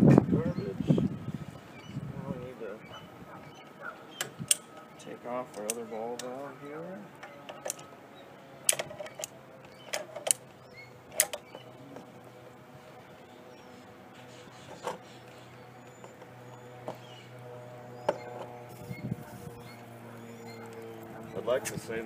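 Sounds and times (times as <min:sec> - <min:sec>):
low hum: 0:00.0 - 0:22.0.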